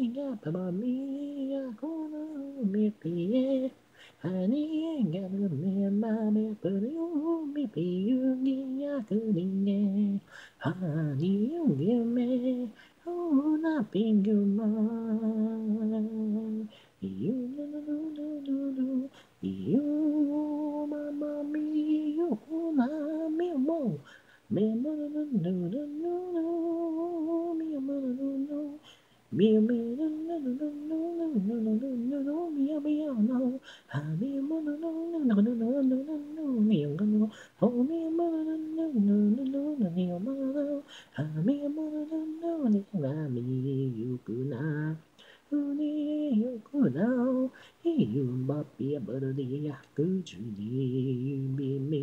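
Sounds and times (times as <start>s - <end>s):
woman singing a cappella: 0.0s - 52.0s.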